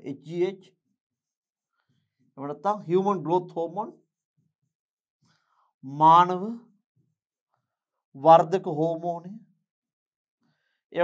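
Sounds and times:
man speaking: 0.0 - 0.6, 2.4 - 3.9, 5.9 - 6.6, 8.2 - 9.4.

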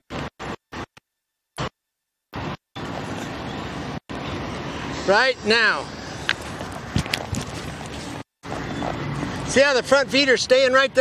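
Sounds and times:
hoof thuds on dirt: 6.3 - 9.0.

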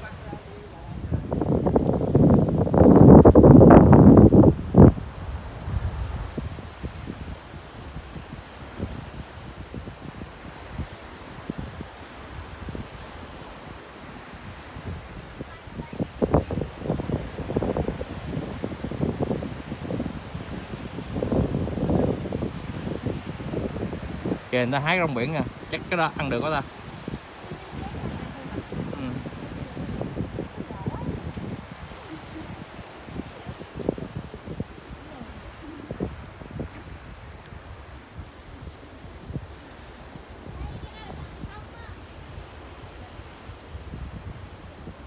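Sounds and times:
surf breaking on rocks: 0.0 - 45.0
wind gusting over microphone: 0.0 - 45.0.

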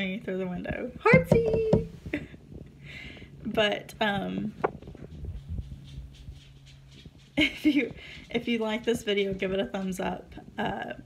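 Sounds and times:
low steady hum: 0.0 - 11.0
soft low thumps: 0.7 - 11.0.

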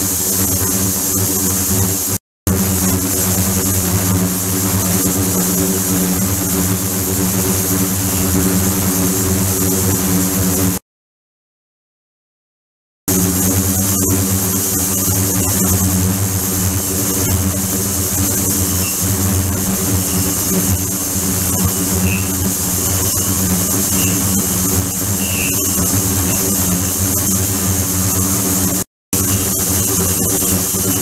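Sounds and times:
ultrasonic tank humming: 13.1 - 31.0.

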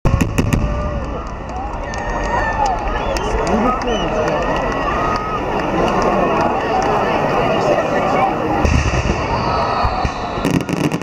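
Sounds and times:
faint firework crackles: 0.1 - 11.0
spectators exclaiming: 0.6 - 11.0.

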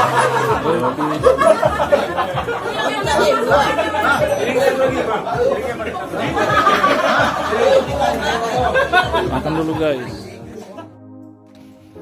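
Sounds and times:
babble of overlapping voices: 0.0 - 10.9.

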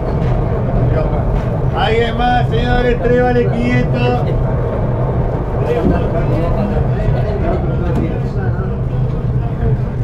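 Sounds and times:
train rumbling inside coach: 0.0 - 10.0.

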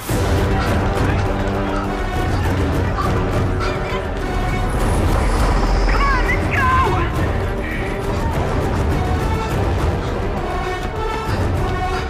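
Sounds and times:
film score: 0.0 - 12.0
heavy low rumble: 0.2 - 10.6.

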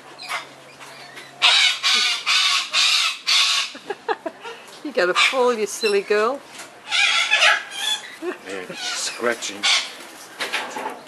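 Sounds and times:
cockatoo screeching: 1.4 - 3.8, 6.8 - 10.0.

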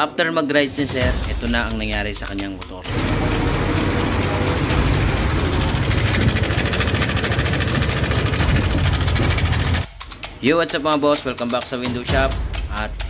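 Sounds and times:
scooter engine chopping: 2.8 - 10.0.

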